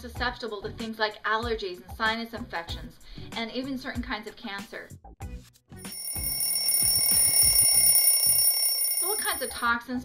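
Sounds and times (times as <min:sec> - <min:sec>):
high bell-like electronic ringing: 0:05.8 - 0:09.6.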